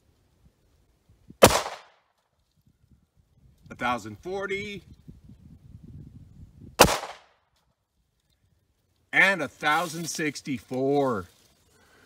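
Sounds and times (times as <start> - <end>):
pistol shot with echo: 1.4 - 1.9, 6.8 - 7.3.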